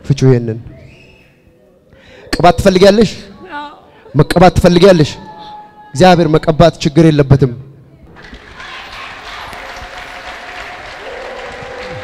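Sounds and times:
crowd applauding: 8.1 - 12.0.

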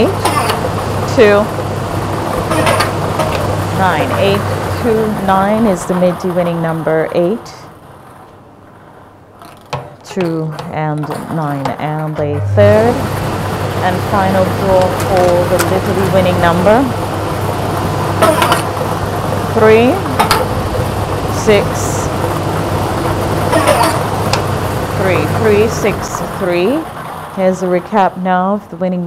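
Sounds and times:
lottery machine mechanical noise: 0.0 - 29.0.

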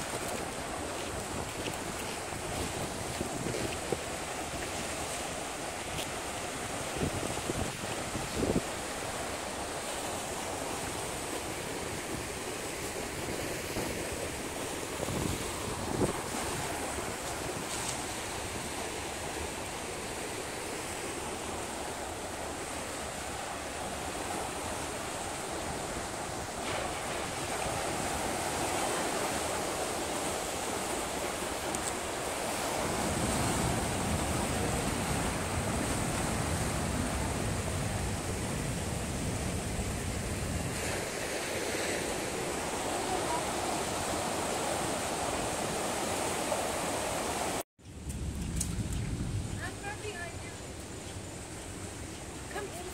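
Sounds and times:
waves breaking on rocky shore: 0.0 - 47.6
wind on microphone: 0.0 - 52.9.

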